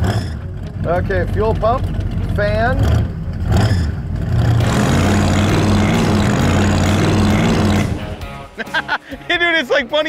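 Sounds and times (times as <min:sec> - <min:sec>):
car engine revving: 0:00.0 - 0:08.5.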